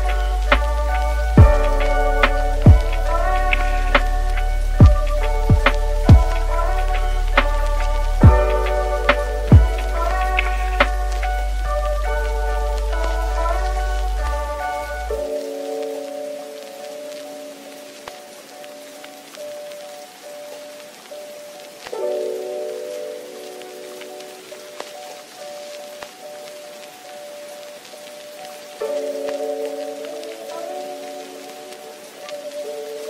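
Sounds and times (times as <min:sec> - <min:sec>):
soft instrumental chords: 0:00.0 - 0:33.0
steady hiss: 0:00.0 - 0:33.0.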